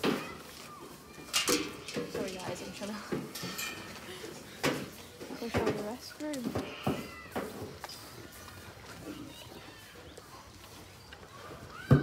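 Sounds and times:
people talking: 2.1s - 3.2s, 5.2s - 6.6s.

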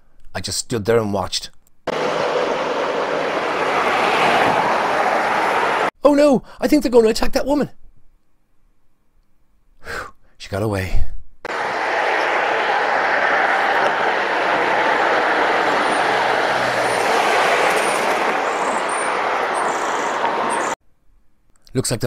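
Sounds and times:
road traffic: 1.9s - 6.0s, 11.5s - 20.8s.

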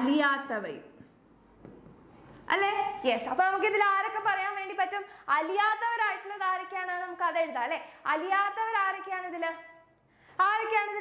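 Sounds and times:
woman speaking: 0.0s - 1.0s, 2.5s - 9.7s, 10.4s - 11.0s
marker pen scratching on whiteboard: 1.0s - 3.4s.

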